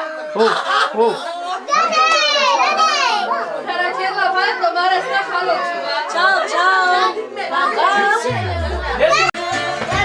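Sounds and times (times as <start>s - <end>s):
crowd of voices: 0.0s - 10.0s.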